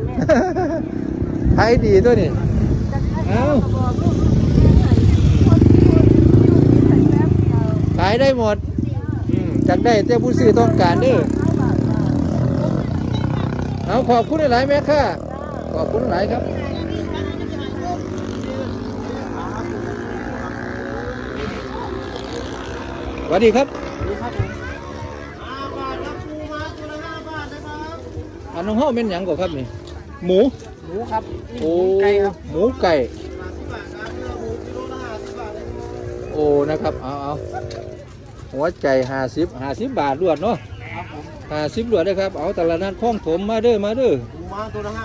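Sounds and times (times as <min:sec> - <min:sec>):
people talking: 0:00.0 - 0:45.0
small motorcycle engine running: 0:03.2 - 0:27.0, 0:28.1 - 0:39.1.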